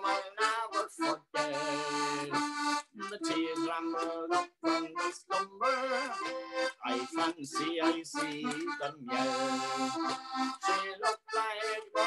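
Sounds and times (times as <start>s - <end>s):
button accordion: 0.0s - 12.0s
man singing a slow ballad: 3.0s - 6.1s, 6.8s - 9.7s.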